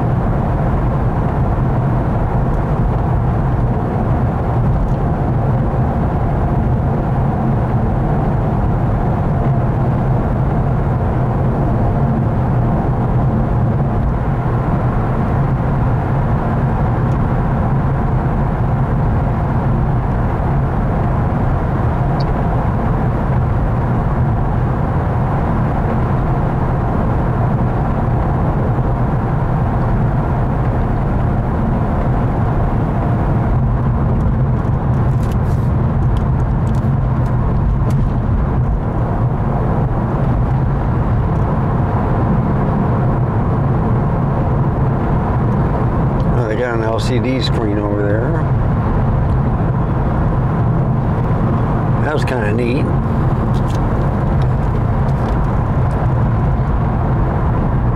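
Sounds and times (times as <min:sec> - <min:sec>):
car road and engine drone: 0:00.0 - 0:57.9.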